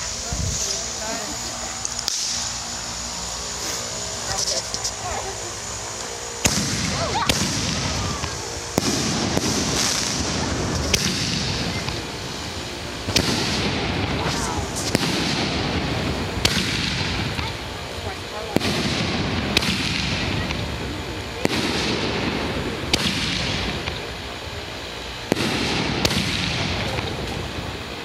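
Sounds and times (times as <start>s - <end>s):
rumbling echo: 0.0s - 24.2s
firework fuse hissing: 0.0s - 28.0s
sharp crackles: 1.6s - 24.2s
firework shell firing: 1.8s - 5.0s, 6.0s - 17.6s, 18.5s - 20.7s, 21.4s - 24.2s, 25.2s - 27.5s.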